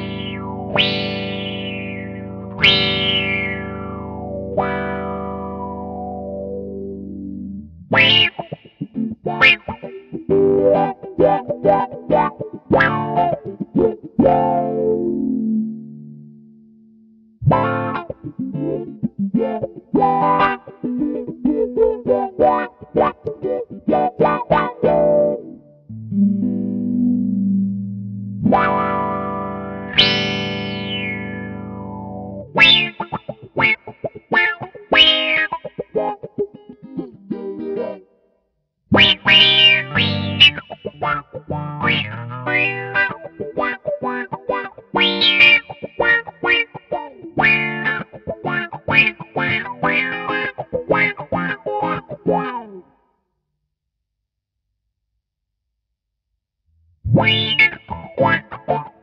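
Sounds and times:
electric guitar with wah-like filter: 0.0 - 16.4, 17.4 - 38.3, 38.9 - 53.1, 57.0 - 59.0.

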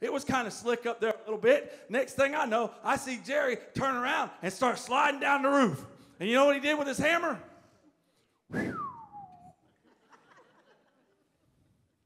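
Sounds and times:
man whistling into a microphone: 8.5 - 9.6.

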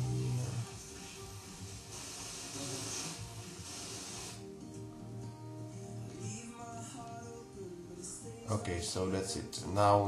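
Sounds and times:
radio static hiss: 0.0 - 4.4
radio station music: 0.0 - 10.0.

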